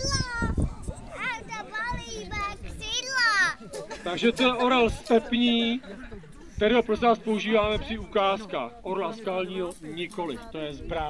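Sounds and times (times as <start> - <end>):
young children talking and calling: 0.0 - 11.0.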